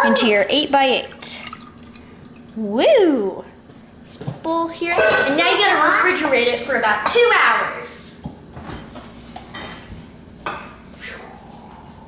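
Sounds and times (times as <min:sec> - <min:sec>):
glass dish knocking and clinking: 0:05.0 - 0:05.4.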